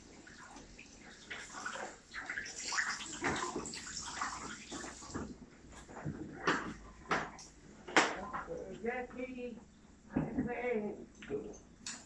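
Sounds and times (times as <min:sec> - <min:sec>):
water splashing into a basin: 0:00.0 - 0:05.4.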